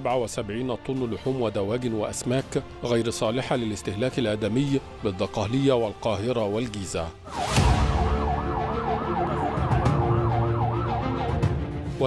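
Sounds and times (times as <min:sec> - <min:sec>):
background music: 0:00.0 - 0:12.0
police siren yelping: 0:07.3 - 0:11.6.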